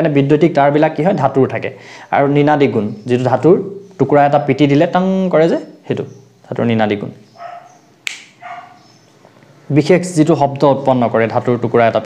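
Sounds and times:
dog barking: 7.4s - 8.9s
sharp click: 8.0s - 8.4s.

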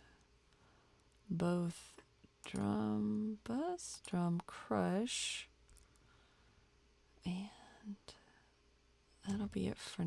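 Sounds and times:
woman speaking softly: 1.3s - 5.5s, 7.2s - 8.3s, 9.2s - 10.0s.

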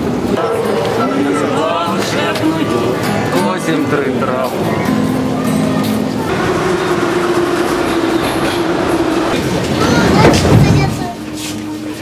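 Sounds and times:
subway train running: 0.0s - 12.0s.

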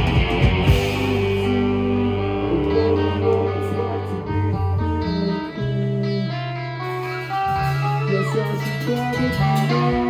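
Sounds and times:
bass line: 0.0s - 10.0s
electric guitars playing chords: 0.0s - 10.0s.

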